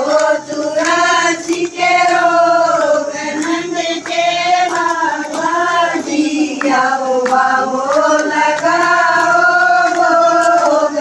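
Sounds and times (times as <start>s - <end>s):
hand-clapping: 0.0s - 11.0s
women singing in unison: 0.0s - 11.0s.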